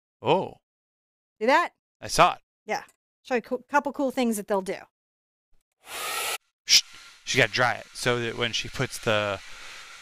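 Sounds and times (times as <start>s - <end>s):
hair dryer blowing: 5.9s - 10.0s.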